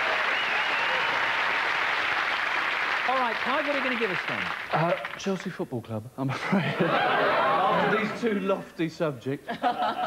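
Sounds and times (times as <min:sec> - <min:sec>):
audience applauding: 0:00.0 - 0:05.4.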